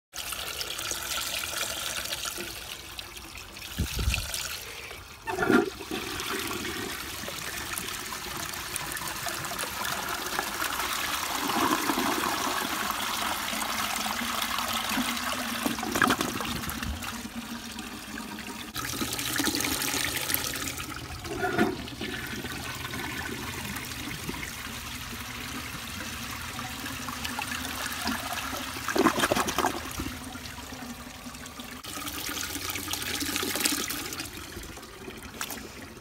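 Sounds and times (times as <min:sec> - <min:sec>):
toilet water rushing and swirling: 0:00.1 - 0:36.0
toilet tank refilling: 0:00.2 - 0:36.0.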